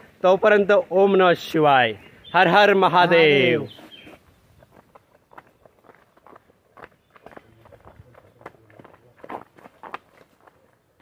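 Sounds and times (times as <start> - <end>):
footsteps on stone path: 3.7 - 11.0.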